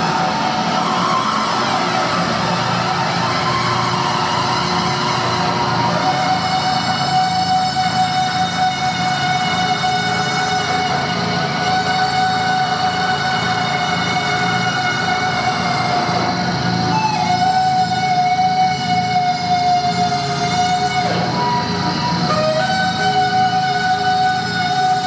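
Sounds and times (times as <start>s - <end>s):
drone music held tone: 0.0s - 25.0s.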